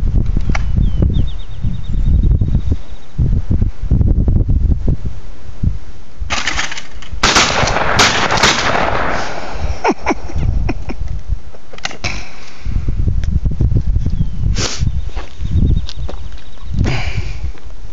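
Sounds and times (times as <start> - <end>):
wind rumbling on microphone: 0.0 - 17.9
shotgun shots: 6.3 - 9.7.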